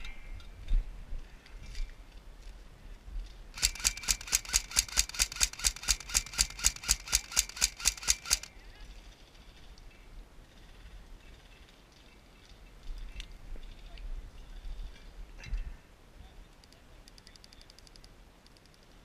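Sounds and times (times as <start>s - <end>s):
airsoft gun firing rapid shots: 3.6s - 8.5s.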